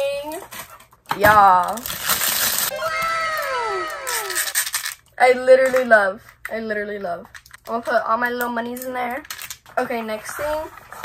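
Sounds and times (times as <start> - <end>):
plastic wrap crinkling: 1.6 - 2.7.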